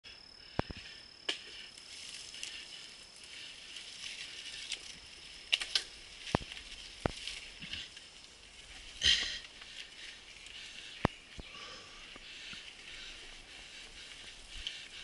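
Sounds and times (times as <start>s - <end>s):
high-pitched insect drone: 0.1s - 15.0s
mountain bike clattering on dirt: 0.6s - 11.4s.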